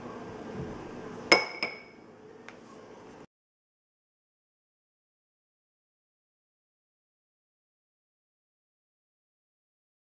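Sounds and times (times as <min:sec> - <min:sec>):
glass clinks ringing: 0:01.3 - 0:02.0.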